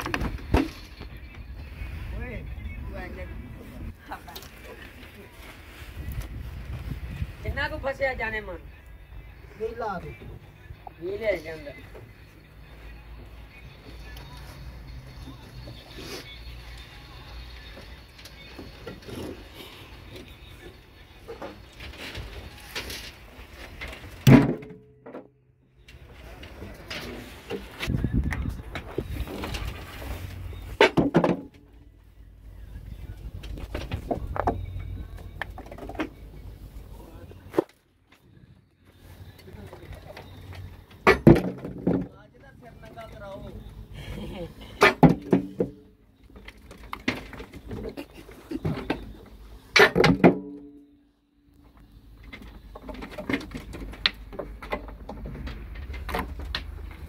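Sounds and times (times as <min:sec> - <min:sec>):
rocks knocking and scraping: 0:33.3 - 0:36.3, 0:52.2 - 0:57.0.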